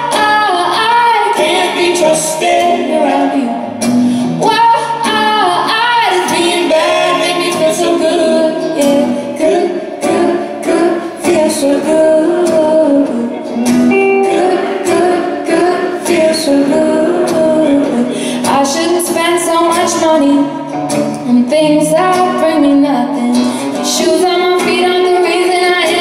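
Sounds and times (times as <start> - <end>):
woman singing: 0.0 - 20.6, 21.2 - 26.0
electric guitar: 0.0 - 26.0
strummed acoustic guitar: 0.0 - 26.0.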